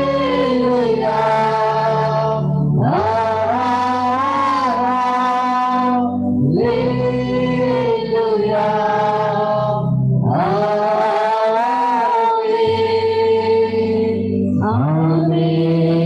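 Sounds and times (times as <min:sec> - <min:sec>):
low keyboard accompaniment: 0:00.0 - 0:16.0
woman singing worship song: 0:00.0 - 0:16.0.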